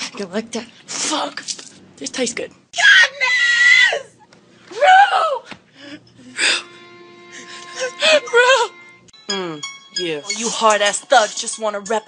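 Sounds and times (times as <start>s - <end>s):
woman screaming: 2.8s - 5.5s, 8.0s - 8.8s.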